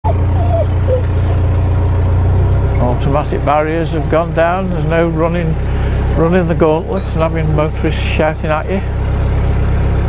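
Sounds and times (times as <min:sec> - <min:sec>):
diesel engine running: 0:00.0 - 0:10.0.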